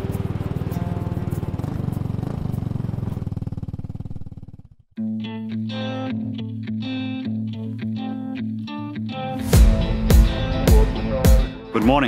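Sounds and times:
guitar music: 0:00.0 - 0:02.6, 0:05.0 - 0:12.0
low fast-pulsing drone: 0:00.0 - 0:03.8.

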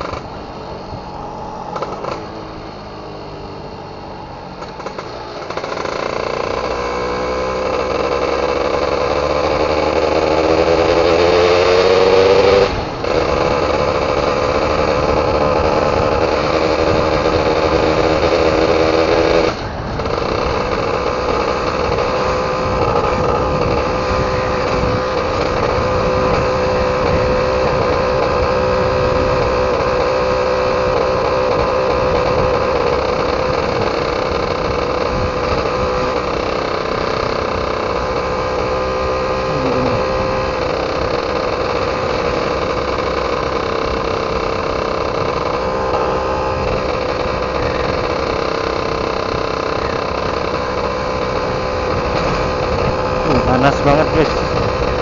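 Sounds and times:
two-stroke motorcycle engine: 0:00.0 - 0:55.0.

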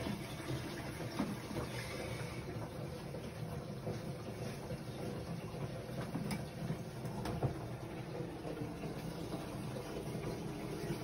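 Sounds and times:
toilet cistern refilling: 0:00.0 - 0:11.0.

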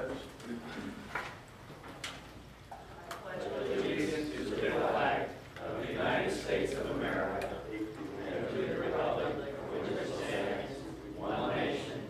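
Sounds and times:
room hum: 0:00.0 - 0:12.0
faint clicks and knocks: 0:01.1 - 0:03.2.

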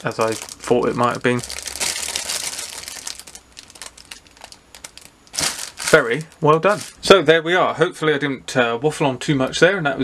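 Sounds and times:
plastic bag crinkling: 0:00.0 - 0:07.1.

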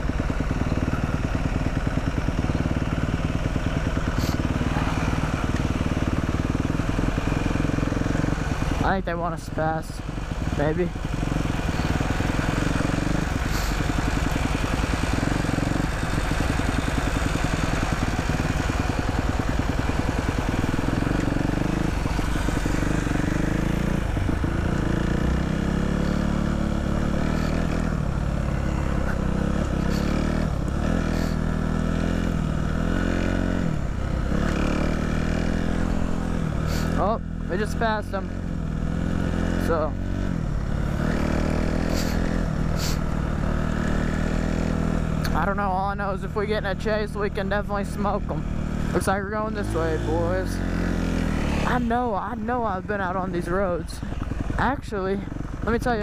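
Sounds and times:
dirt bike engine running: 0:00.0 - 0:56.0.

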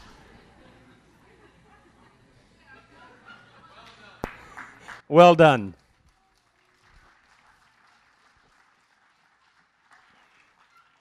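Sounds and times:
faint audience applause: 0:03.8 - 0:11.0.

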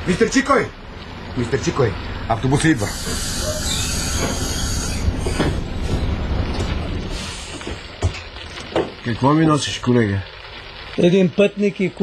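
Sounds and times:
bus engine rumble: 0:00.0 - 0:09.0
brake hiss and squeal: 0:01.5 - 0:06.2, 0:07.0 - 0:07.8.

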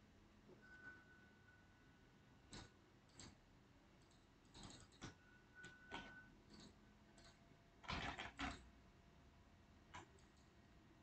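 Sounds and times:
computer mouse clicks: 0:02.5 - 0:03.4, 0:04.0 - 0:08.7, 0:09.9 - 0:10.6.

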